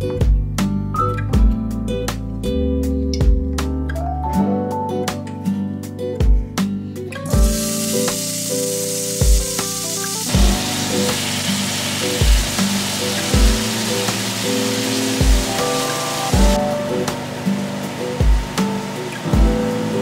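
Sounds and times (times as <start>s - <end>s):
background music with steady beat: 0.0s - 20.0s
chicken sizzling in hot oil: 7.4s - 20.0s.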